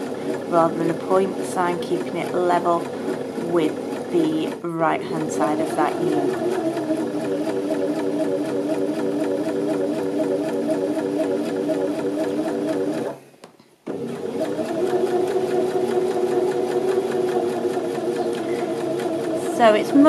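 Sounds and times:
electric sewing machine stitching: 0:00.0 - 0:13.2, 0:13.9 - 0:20.0.

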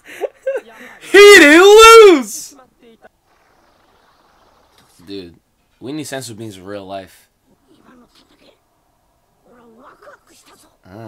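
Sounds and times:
person speaking: 0:01.0 - 0:02.4.

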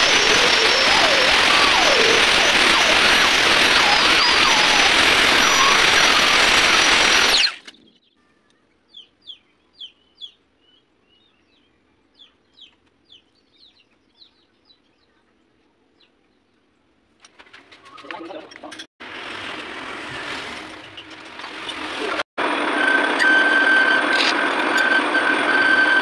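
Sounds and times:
grinding wheel grinding steel: 0:00.0 - 0:07.7, 0:19.0 - 0:26.0
bird chirps: 0:07.3 - 0:15.3.

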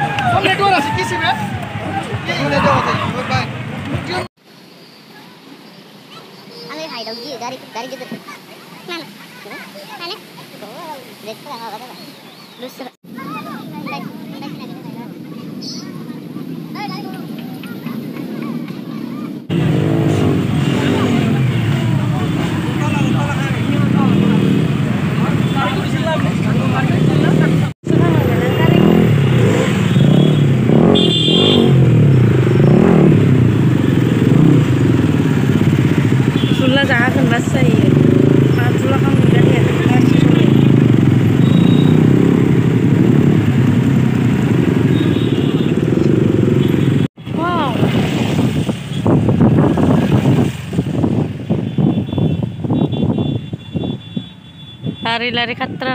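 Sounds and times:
people's voices: 0:00.0 - 0:04.3, 0:05.1 - 0:31.0, 0:32.7 - 0:44.9, 0:45.7 - 0:49.0, 0:55.0 - 0:55.9
motorcycle engines in traffic: 0:00.0 - 0:55.9.

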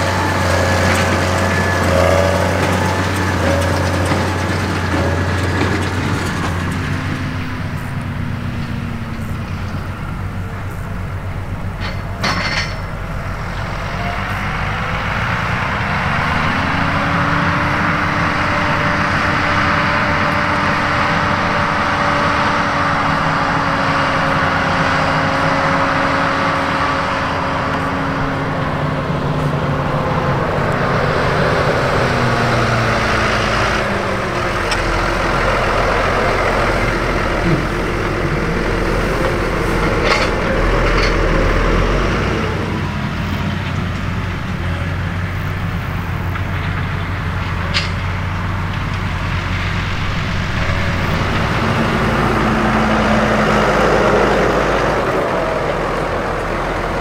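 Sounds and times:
tractor diesel engine working hard: 0:00.0 - 0:57.0.

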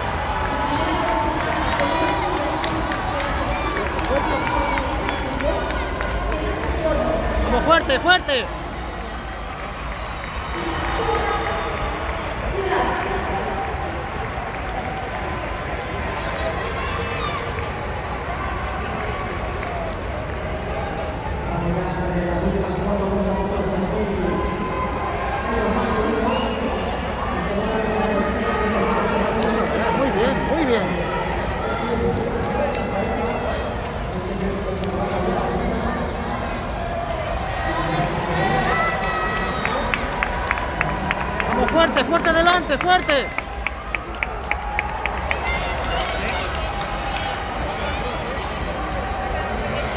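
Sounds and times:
crowd talking and calling out: 0:00.0 - 0:49.9.

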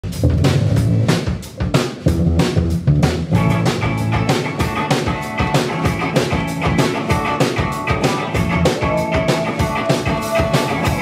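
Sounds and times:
live rock band playing: 0:00.0 - 0:11.0
sustained electric guitar notes: 0:03.3 - 0:11.0.

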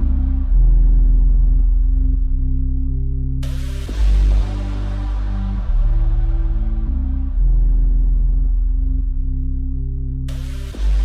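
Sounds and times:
deep synth bass notes: 0:00.0 - 0:11.0.

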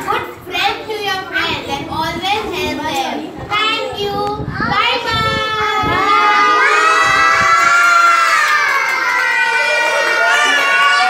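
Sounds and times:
children cheering and shouting: 0:05.0 - 0:11.0.

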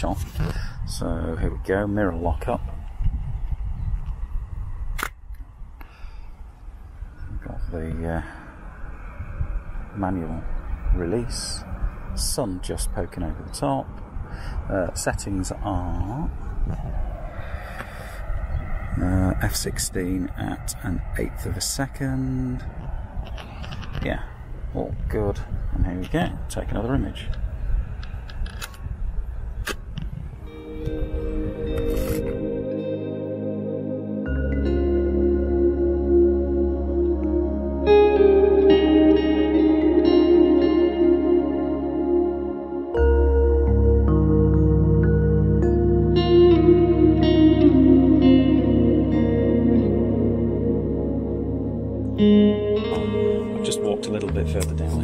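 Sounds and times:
wind on microphone: 0:00.0 - 0:32.8
low microphone rumble: 0:30.0 - 0:55.0
soft ambient music: 0:30.4 - 0:55.0.

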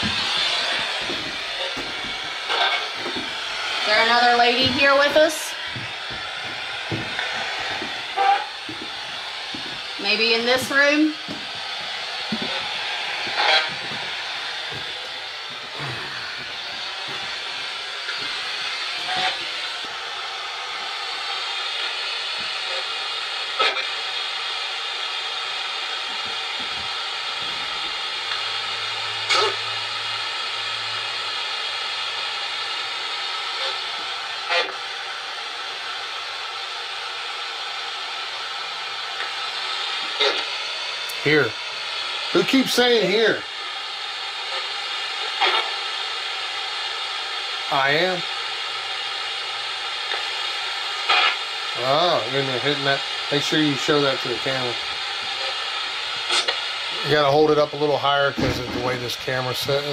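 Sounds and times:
radio static sweeping: 0:00.0 - 0:19.7.

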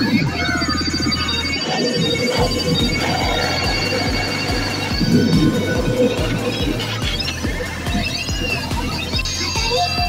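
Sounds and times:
electronic effect music: 0:00.0 - 0:10.0
high chiming tones: 0:00.0 - 0:10.0.

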